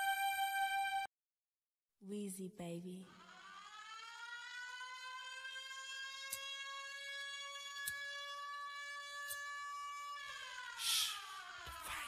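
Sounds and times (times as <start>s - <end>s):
siren wailing: 3.0s - 12.0s.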